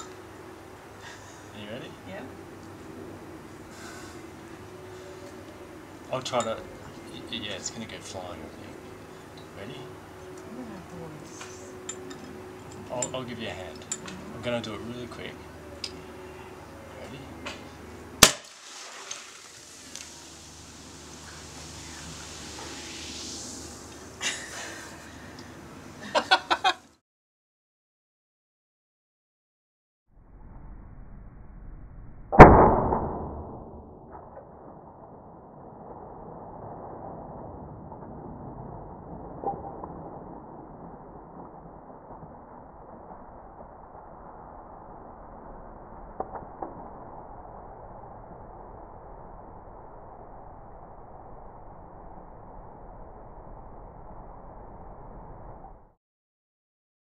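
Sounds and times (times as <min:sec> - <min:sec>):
bottle bursting open pop: 0:18.2 - 0:20.1
hiss of beer foaming: 0:18.4 - 0:25.4.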